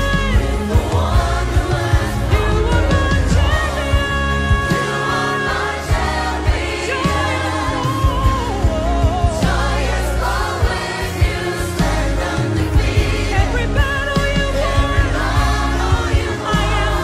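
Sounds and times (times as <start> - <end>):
bass guitar: 0.0 - 17.0
choir singing: 0.0 - 17.0
drum kit beat with cymbals: 0.0 - 17.0.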